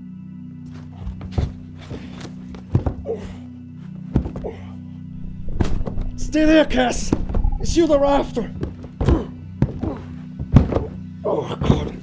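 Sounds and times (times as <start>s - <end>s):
low droning film score: 0.0s - 12.0s
heavy thuds on a door: 8.5s - 11.0s.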